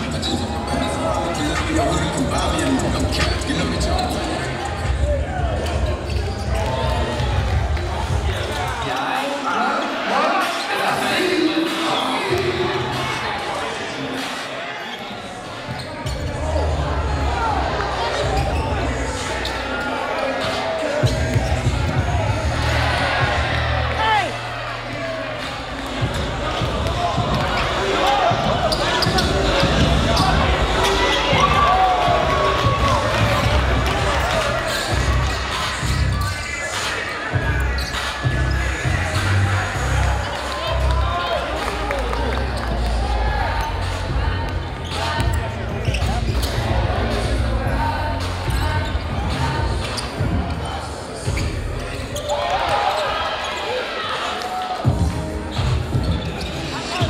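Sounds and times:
sneaker squeaks: 0.0s - 7.3s, 14.2s - 16.6s, 18.0s - 22.1s, 26.0s - 31.7s, 34.2s - 40.5s, 43.6s - 46.8s, 48.1s - 57.0s
voices in a hall: 0.0s - 57.0s.

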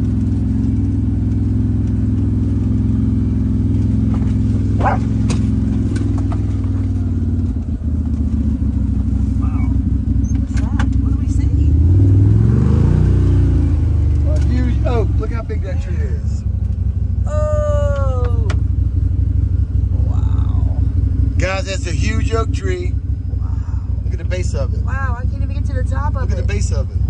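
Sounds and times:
vehicle engine droning and revving: 0.0s - 27.0s.

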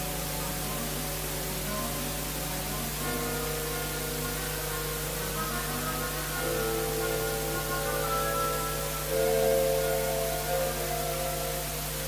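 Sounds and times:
orchestra playing sustained chords: 0.0s - 12.0s
recording hiss and hum: 0.0s - 12.0s.

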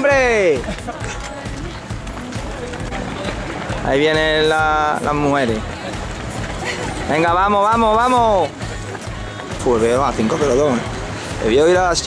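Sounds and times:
man's voice: 0.0s - 12.0s
runners' footsteps on road: 0.0s - 12.0s.

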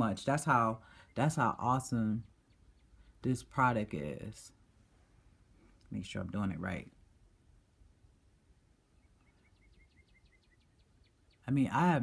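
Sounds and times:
small bird chirping: 0.2s - 3.6s, 8.7s - 12.0s.

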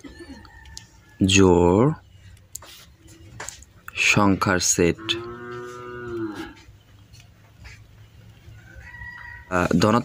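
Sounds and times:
cow mooing: 4.9s - 6.6s.

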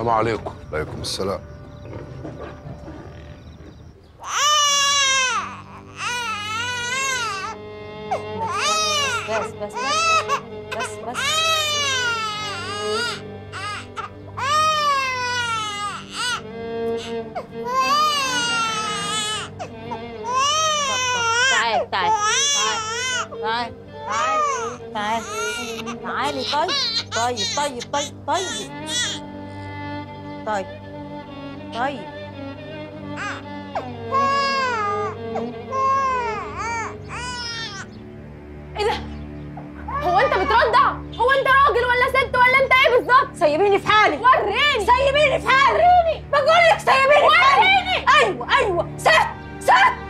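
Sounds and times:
background music with low tones: 0.0s - 50.0s
baby crying: 4.2s - 29.3s, 33.0s - 37.9s, 39.8s - 41.0s.

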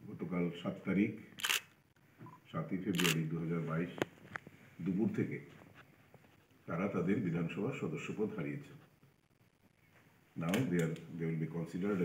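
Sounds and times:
man speaking: 2.5s - 4.0s, 6.7s - 8.8s, 10.4s - 12.0s.

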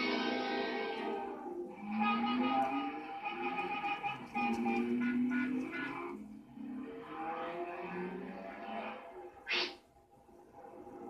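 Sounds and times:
cartoon soundtrack from television: 0.0s - 11.0s.

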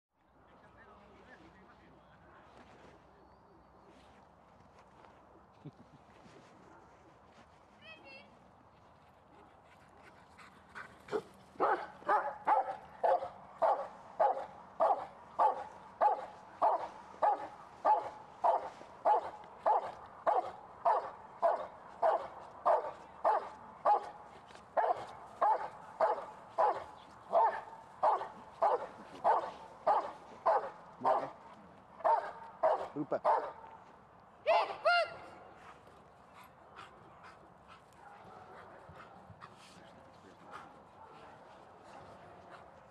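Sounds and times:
dog barking rhythmically: 11.6s - 24.2s, 24.8s - 31.4s, 32.0s - 33.6s.

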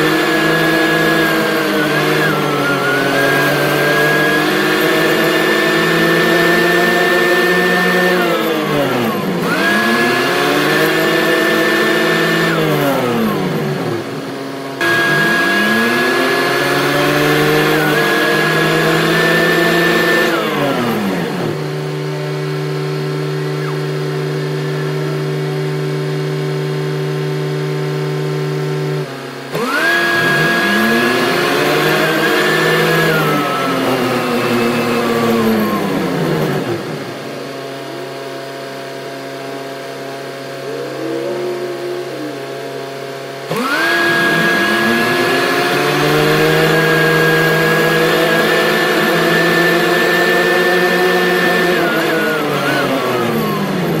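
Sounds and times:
backhoe diesel engine revving: 0.0s - 38.4s, 39.1s - 54.0s
high whine: 36.9s - 43.5s.

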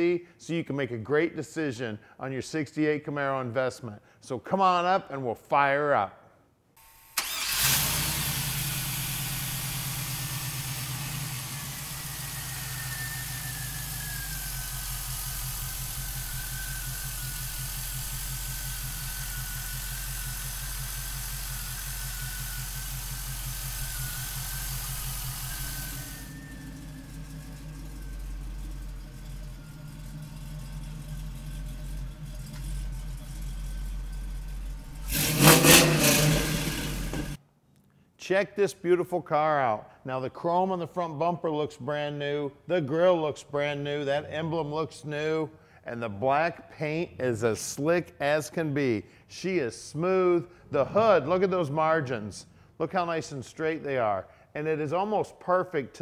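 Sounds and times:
car engine starting and idling: 7.2s - 37.4s
engine revving: 7.2s - 37.4s.

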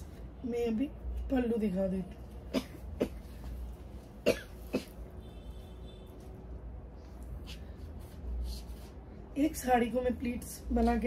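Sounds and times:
woman coughing: 2.5s - 3.3s, 4.2s - 5.0s.

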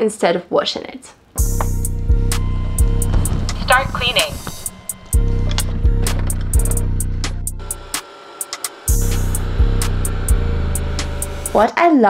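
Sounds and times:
electronic beat with deep bass: 1.4s - 11.6s.

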